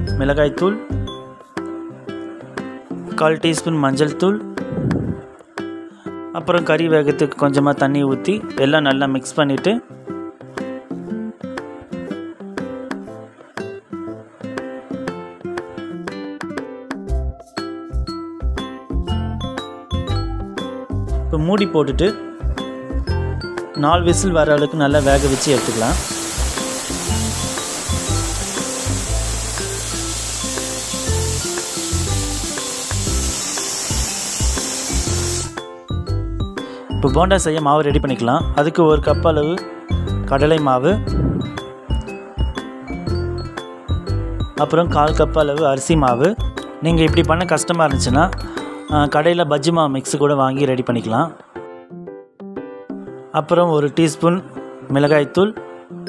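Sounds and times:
background music: 0:00.0 - 0:56.0
pressure cooker whistle hissing: 0:24.9 - 0:35.6.

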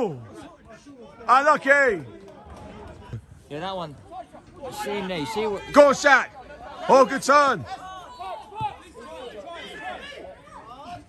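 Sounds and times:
faint shouts and chatter: 0:00.0 - 0:11.0.

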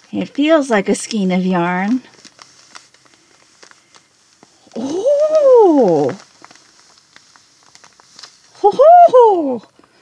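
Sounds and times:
plastic wrapping crinkling: 0:00.0 - 0:10.0
gliding vocal call: 0:04.6 - 0:06.2.

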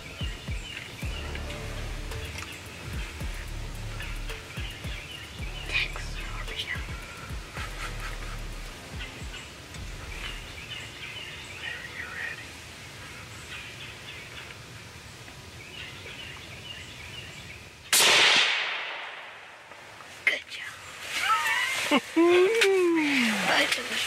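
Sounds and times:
birds calling faintly: 0:00.0 - 0:18.0
loud rifle shot: 0:17.9 - 0:19.7.

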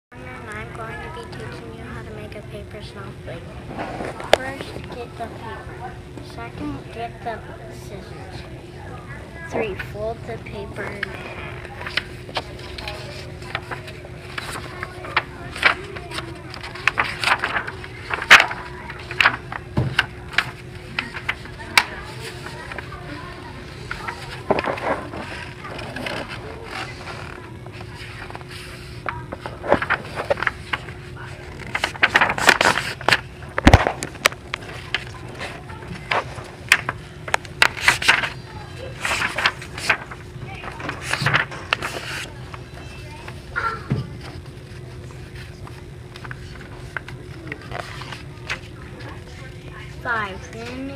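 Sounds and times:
faint steady hum: 0:00.1 - 0:50.9
paper crinkling and rustling: 0:09.6 - 0:50.9.

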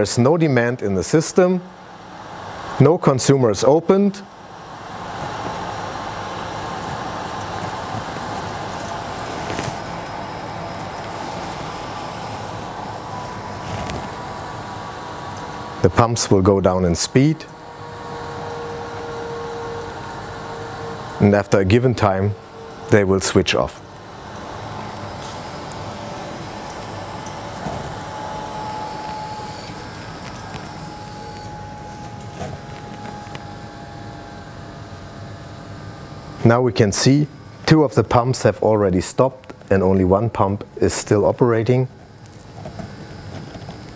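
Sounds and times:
faint high whine: 0:00.0 - 0:43.9
pumps humming with water rush: 0:00.0 - 0:43.9.

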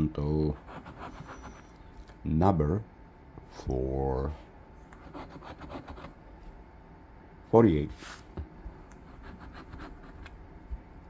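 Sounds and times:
coin scratching a scratch card: 0:00.6 - 0:01.7, 0:05.0 - 0:06.1, 0:09.0 - 0:10.3.

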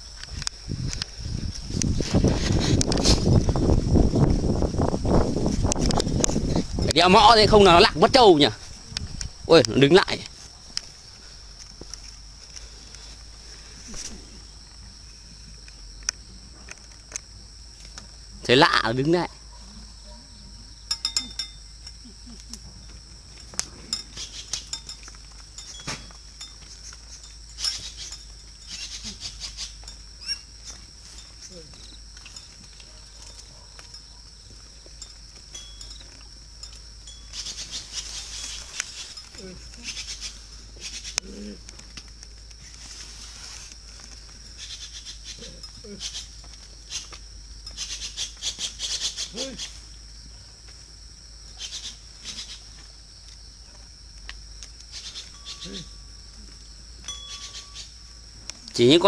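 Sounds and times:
crickets chirring: 0:00.0 - 0:59.0
wooden bell clacking: 0:20.9 - 0:22.0, 0:23.9 - 0:26.7, 0:35.0 - 0:37.4, 0:57.0 - 0:57.9.

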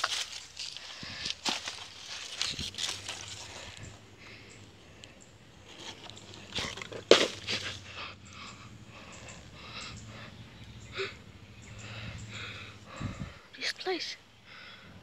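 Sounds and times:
handling noise: 0:00.0 - 0:04.0, 0:05.6 - 0:07.9
rustling of dry leaves: 0:00.0 - 0:14.1.

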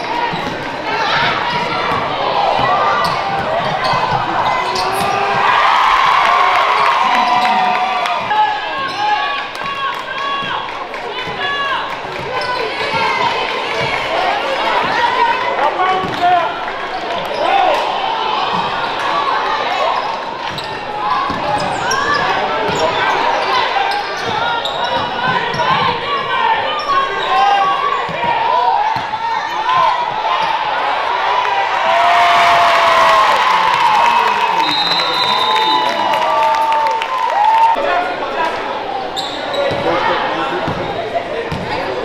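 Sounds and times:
sneakers squeaking: 0:00.0 - 0:06.0, 0:06.8 - 0:14.1, 0:18.4 - 0:30.8, 0:39.0 - 0:42.0
players and spectators calling out: 0:00.0 - 0:42.0.

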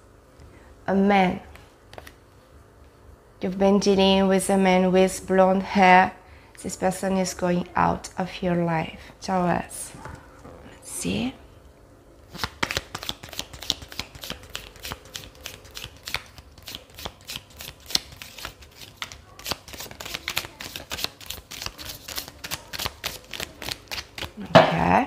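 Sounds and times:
cards being shuffled: 0:01.9 - 0:02.2, 0:12.3 - 0:24.4.

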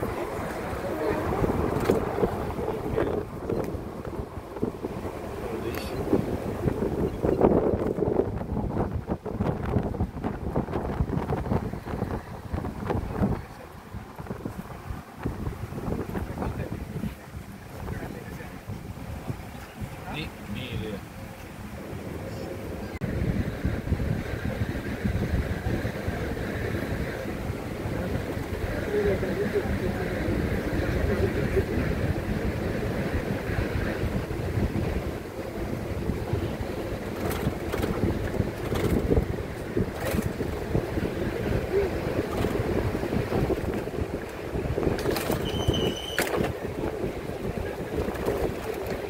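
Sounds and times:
low uneven rumble: 0:00.0 - 0:49.0
wind buffeting microphone: 0:00.0 - 0:49.0.

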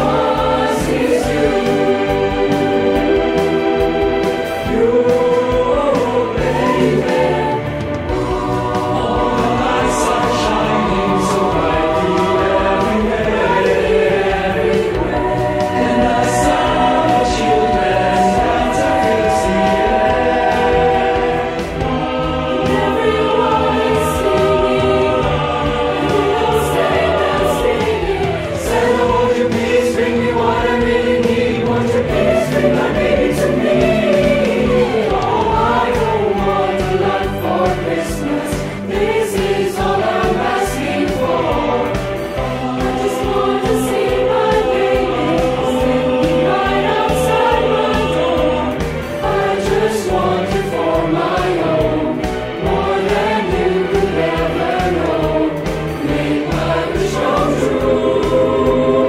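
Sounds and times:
mixed choir singing in harmony: 0:00.0 - 0:59.0.

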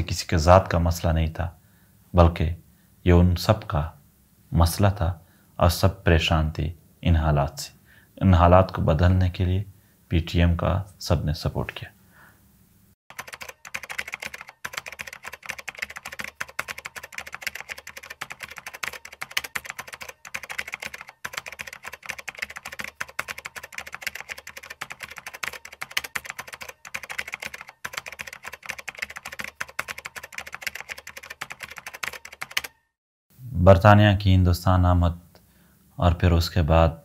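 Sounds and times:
computer keyboard typing: 0:13.1 - 0:32.8.

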